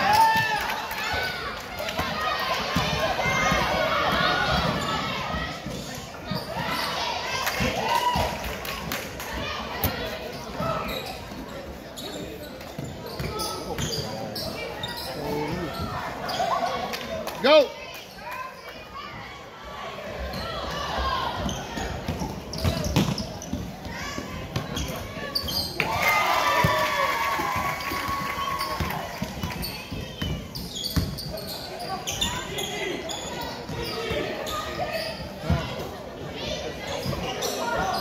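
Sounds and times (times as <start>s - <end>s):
echoing chatter of voices: 0.0s - 38.0s
basketballs bouncing on wooden floor: 21.4s - 25.6s, 28.8s - 31.4s.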